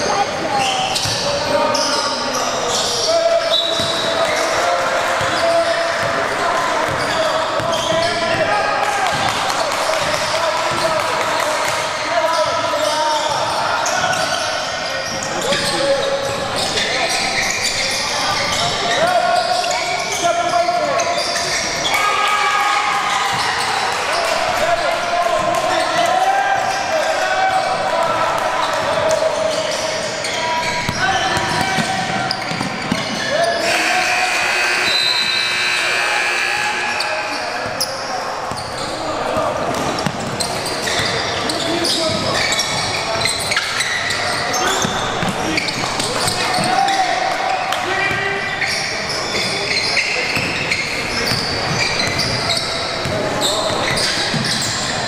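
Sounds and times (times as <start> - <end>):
unclear voices: 0.0 - 55.0.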